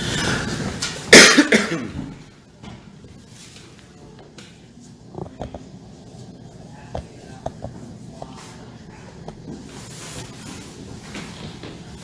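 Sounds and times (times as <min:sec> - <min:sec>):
person coughing: 0:01.1 - 0:02.2.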